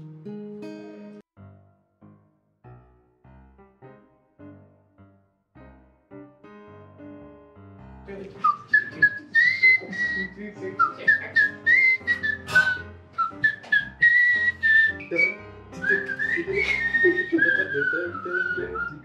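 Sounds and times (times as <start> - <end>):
keyboard chords: 0.0 - 19.0
whistled melody: 8.4 - 19.0.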